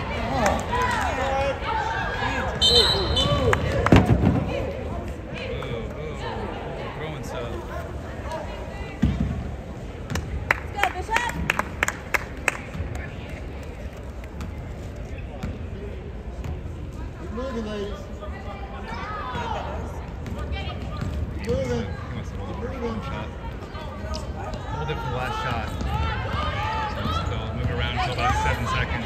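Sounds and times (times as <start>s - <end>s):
voices in a gym: 0.0s - 29.0s.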